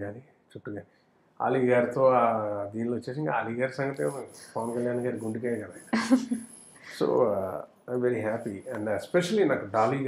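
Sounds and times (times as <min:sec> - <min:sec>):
man speaking: 0:00.0 - 0:00.8, 0:01.4 - 0:05.9, 0:06.9 - 0:10.0.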